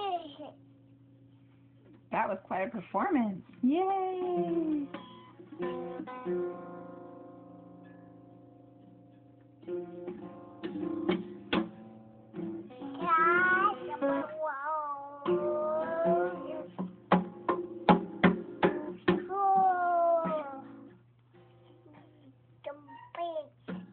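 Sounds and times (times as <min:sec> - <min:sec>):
toy guitar plucking and strumming: 0:12.7 - 0:20.9
toddler singing high notes: 0:13.0 - 0:16.6, 0:19.3 - 0:20.8.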